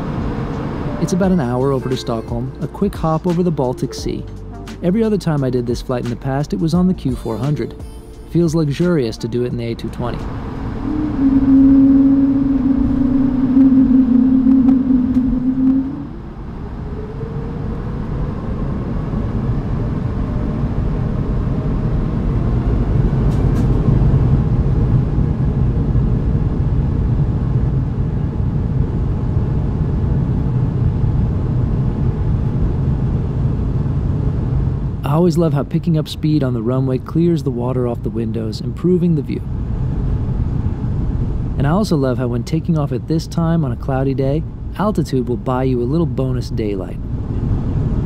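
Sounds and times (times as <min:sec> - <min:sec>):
cabin engine hum: 0:00.0 - 0:48.0
jet engines spooling up: 0:09.9 - 0:25.4.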